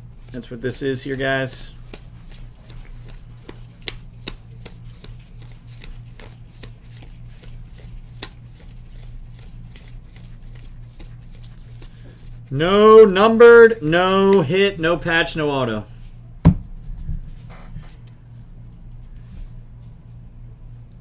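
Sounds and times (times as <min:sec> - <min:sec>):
cards flicking: 0:01.8 - 0:12.0
low hum: 0:08.8 - 0:21.0.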